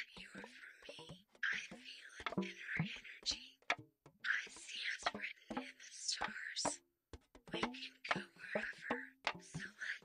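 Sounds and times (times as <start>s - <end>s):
person whispering: 0.0s - 3.5s, 4.3s - 6.8s, 7.6s - 10.0s.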